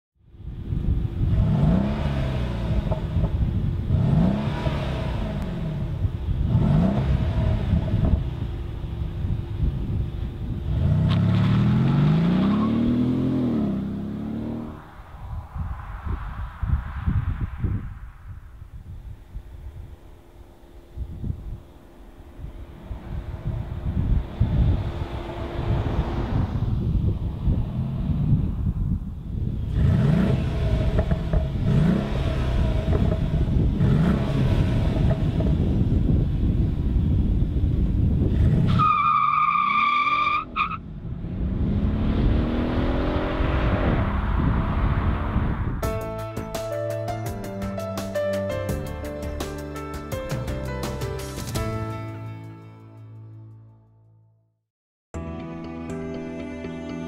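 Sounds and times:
car engine accelerating: 0.4 - 46.2.

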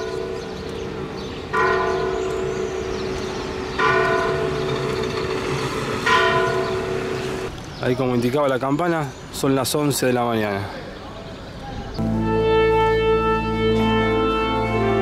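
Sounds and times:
church bell striking: 0.0 - 0.8, 1.5 - 5.0, 6.0 - 7.4.

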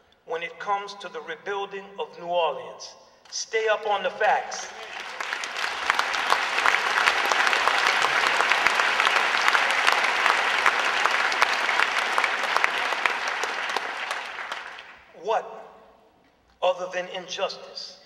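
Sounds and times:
audience applauding: 3.7 - 15.1.

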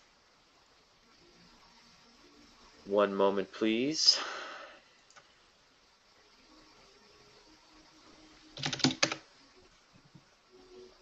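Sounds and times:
faint click: 5.0 - 5.3
keyboard typing: 8.6 - 9.3.

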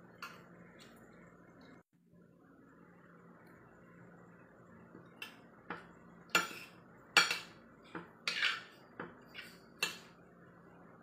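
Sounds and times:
cutlery clinking on a plate: 6.4 - 9.1.

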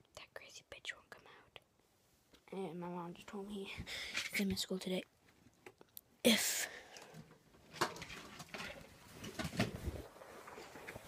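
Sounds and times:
boy whispering: 0.0 - 1.7, 6.2 - 6.8.

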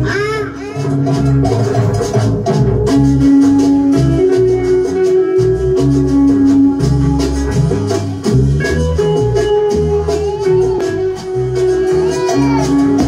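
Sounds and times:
cumbia music: 0.0 - 13.0.

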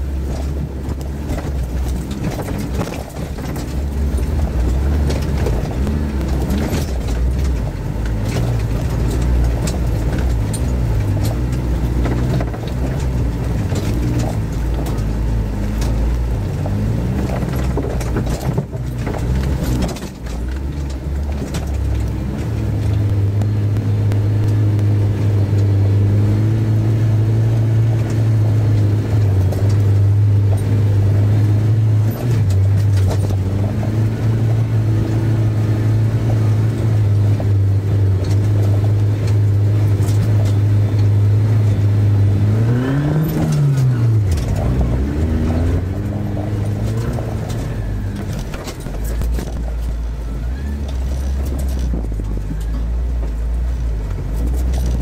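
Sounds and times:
car engine running under load: 0.0 - 55.0.

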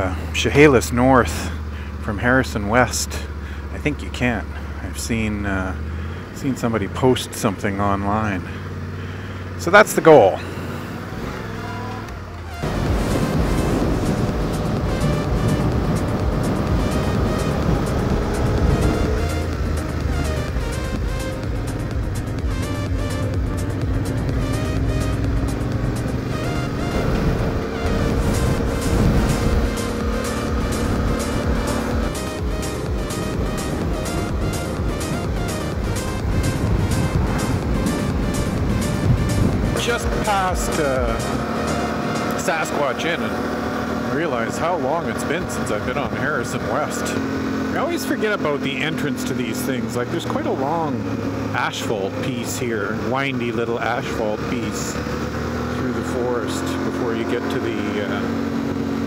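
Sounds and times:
motorcycle engine running: 0.0 - 59.0
music with steady beat: 12.5 - 42.4.

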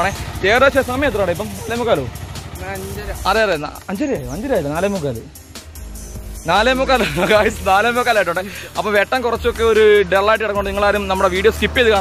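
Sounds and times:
man speaking: 0.0 - 5.4, 6.4 - 12.0.

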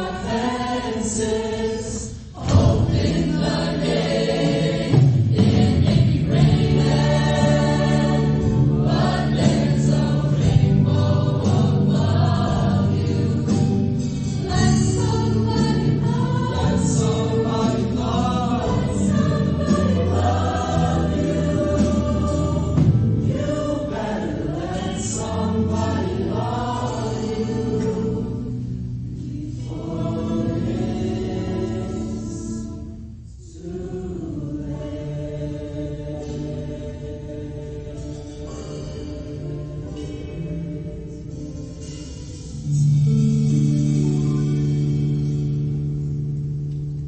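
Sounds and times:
mixed choir singing: 0.0 - 43.6.

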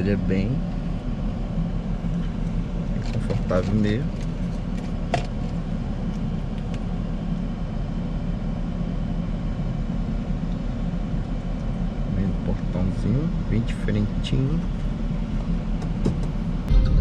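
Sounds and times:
car cabin low rumble: 0.0 - 17.0.

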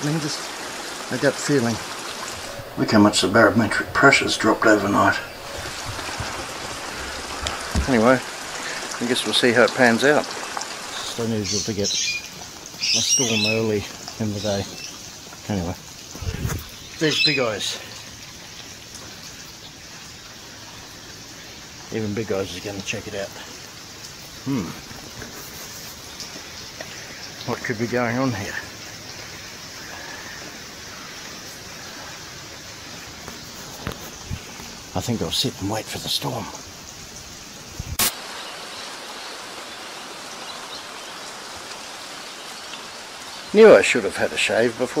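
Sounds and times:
light rain falling: 0.0 - 45.0.

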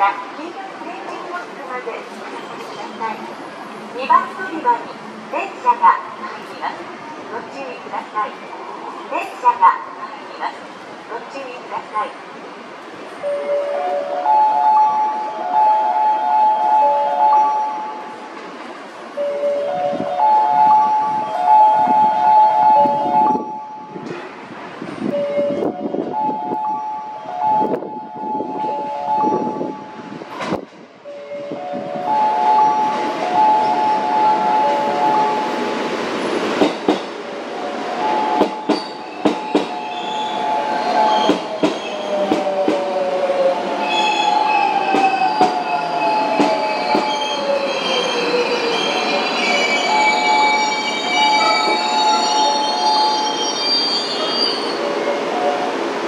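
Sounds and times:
high brake squeal: 43.9 - 55.0.

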